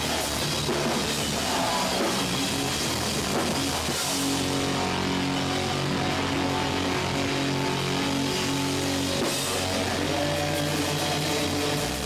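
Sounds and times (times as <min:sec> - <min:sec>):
bass guitar: 0:00.0 - 0:12.0
distorted electric guitar: 0:00.0 - 0:12.0.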